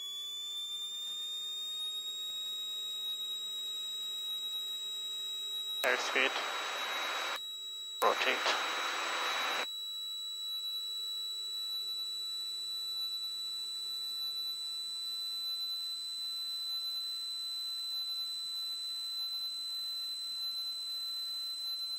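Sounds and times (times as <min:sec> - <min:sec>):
burst of noise: 0:05.8 - 0:07.4, 0:08.0 - 0:09.6
low hiss: 0:05.8 - 0:07.4, 0:08.0 - 0:09.6.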